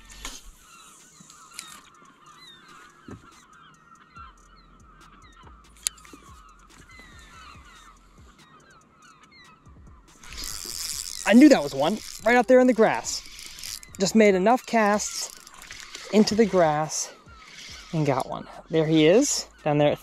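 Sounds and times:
flock of birds calling: 0:00.0 - 0:20.0.

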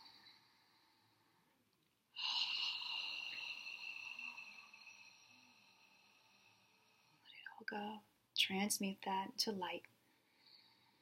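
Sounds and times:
woman breathing out: 0:02.2 - 0:07.4.

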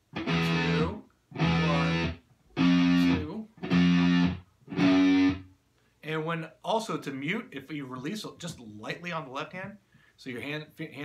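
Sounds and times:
electric guitar single notes: 0:00.1 - 0:05.5.

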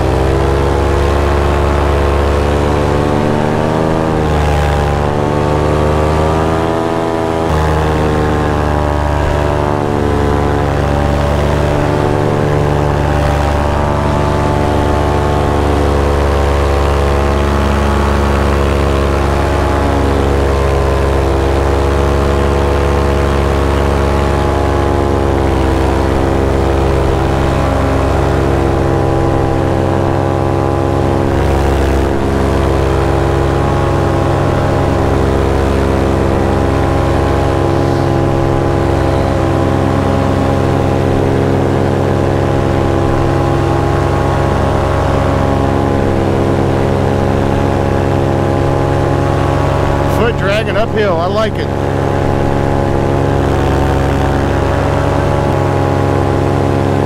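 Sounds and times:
paramotor engine and propeller: 0:00.0 - 0:57.0.

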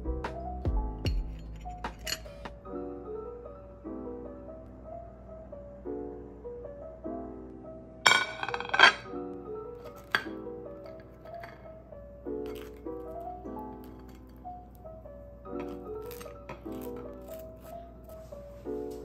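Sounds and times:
soft piano music: 0:00.0 - 0:19.0
ceramic plate clinking: 0:01.4 - 0:02.4, 0:08.1 - 0:09.2, 0:09.8 - 0:11.7, 0:12.4 - 0:14.4.

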